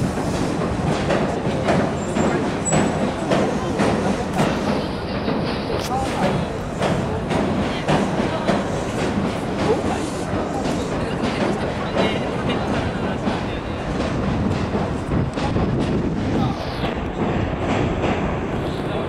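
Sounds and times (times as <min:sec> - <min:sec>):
train wheels clattering on bridge: 0:00.0 - 0:19.0.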